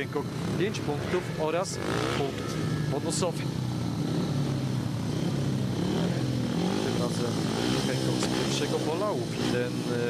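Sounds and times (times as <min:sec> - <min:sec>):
racing motorcycle engines droning: 0:00.0 - 0:10.0.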